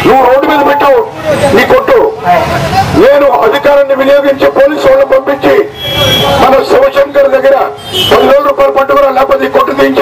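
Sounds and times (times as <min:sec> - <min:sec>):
crowd babble: 0:00.0 - 0:10.0
man speaking loudly: 0:00.0 - 0:10.0.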